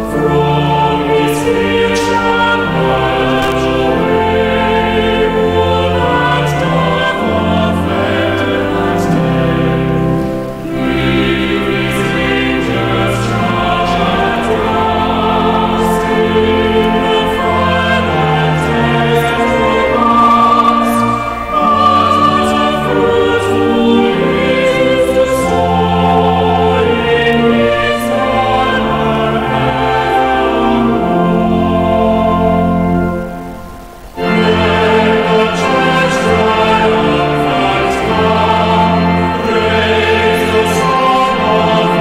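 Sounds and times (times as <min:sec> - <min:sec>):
choir singing long held notes: 0:00.0 - 0:42.0.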